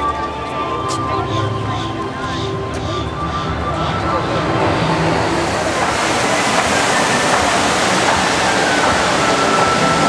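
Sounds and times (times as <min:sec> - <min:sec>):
fountain water rushing and splashing: 0:00.0 - 0:10.0.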